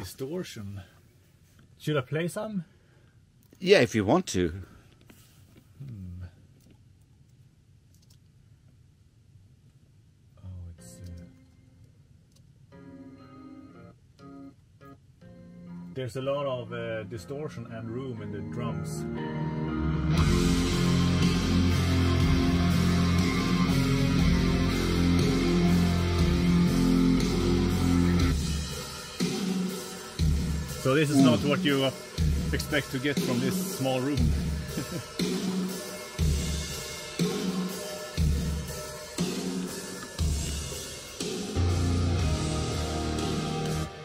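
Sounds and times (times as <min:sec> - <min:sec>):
distorted death metal music: 0:20.1 - 0:44.0.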